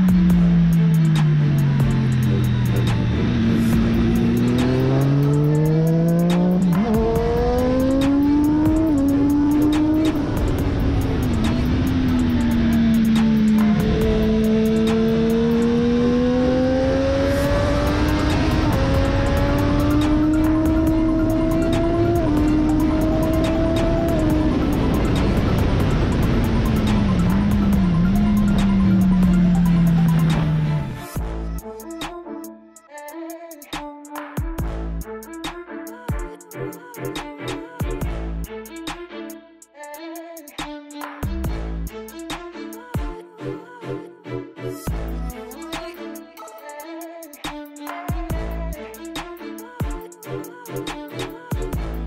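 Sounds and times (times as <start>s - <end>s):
racing motorcycle engine: 0.0s - 31.3s.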